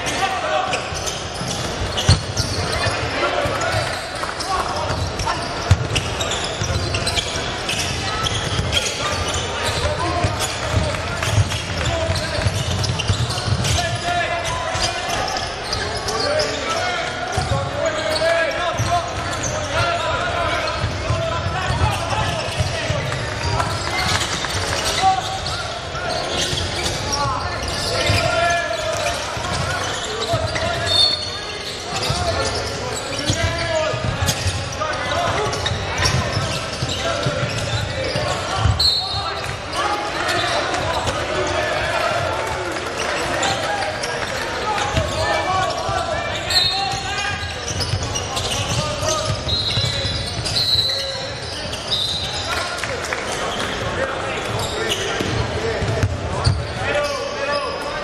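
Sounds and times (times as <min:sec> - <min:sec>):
basketball bouncing on wooden court: 0:03.5 - 0:14.1, 0:55.2 - 0:56.8.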